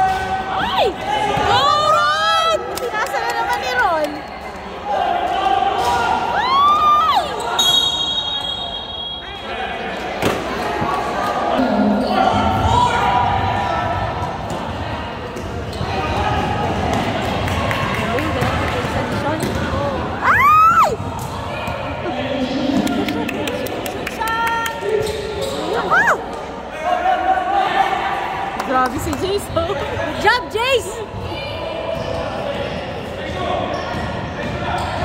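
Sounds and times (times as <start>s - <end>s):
spectator chatter: 0.0s - 35.0s
sneakers squeaking on floor: 7.2s - 9.4s, 31.1s - 35.0s.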